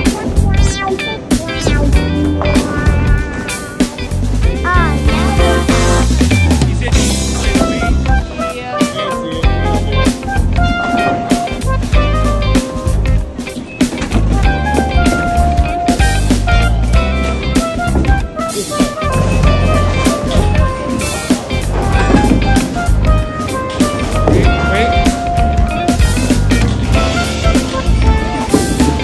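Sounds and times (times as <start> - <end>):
background music with guitar and drums: 0.0 - 29.0.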